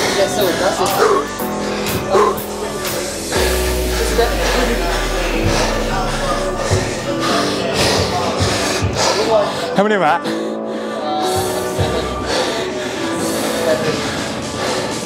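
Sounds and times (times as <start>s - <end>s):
background music with sustained notes: 0.0s - 8.6s
deep bass note: 1.4s - 8.4s
wavering pitched glide: 2.6s - 8.0s.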